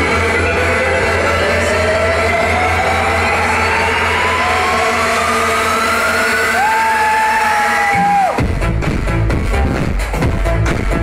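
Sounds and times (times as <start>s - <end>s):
rising synth tone: 0.0s - 8.5s
held bass: 0.0s - 11.0s.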